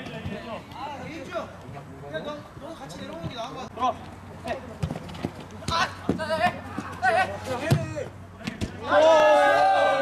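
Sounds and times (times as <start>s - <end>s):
players running on artificial turf: 2.4s - 9.7s.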